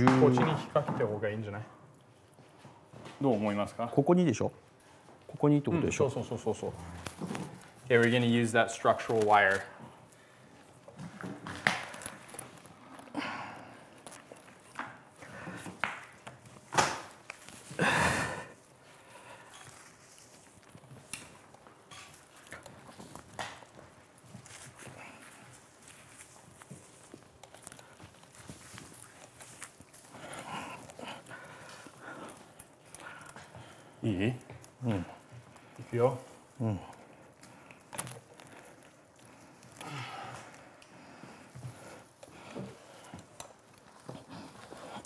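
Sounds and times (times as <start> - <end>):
rustling pine needles: 5.4 - 10.8, 16.4 - 45.0.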